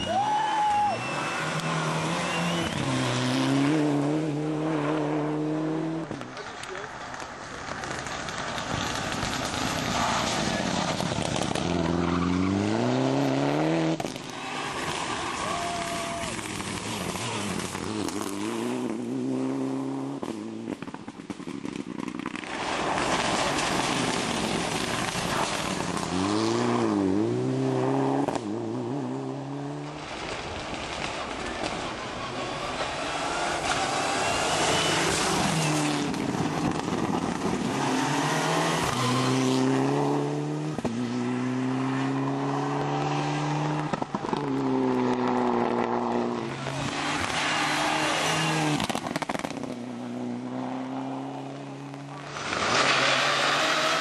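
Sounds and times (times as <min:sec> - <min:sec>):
rally car engine accelerating: 0:00.9 - 0:06.4
engine crackling pops: 0:06.1 - 0:11.7, 0:20.2 - 0:26.1, 0:30.0 - 0:32.2, 0:43.8 - 0:46.0, 0:48.8 - 0:49.8.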